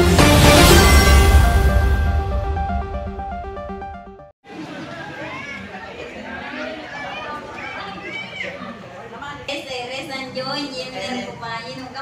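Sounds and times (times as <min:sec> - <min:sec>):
electronic theme music: 0:00.0 - 0:04.3
people talking at once: 0:04.5 - 0:12.0.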